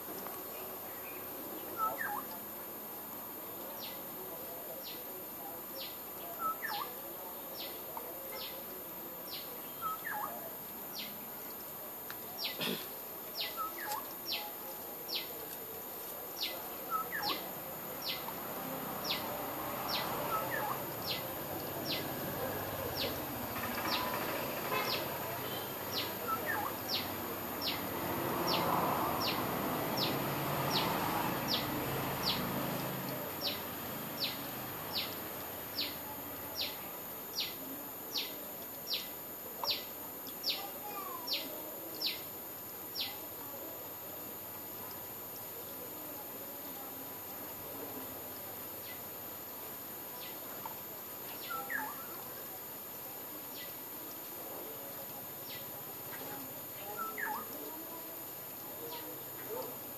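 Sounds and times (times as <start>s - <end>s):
steady background noise: 0.0s - 59.9s.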